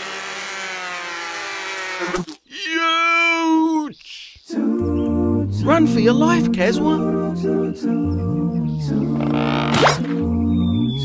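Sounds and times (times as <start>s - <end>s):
cartoon bee buzzing: 0.0s - 2.3s, 9.0s - 10.8s.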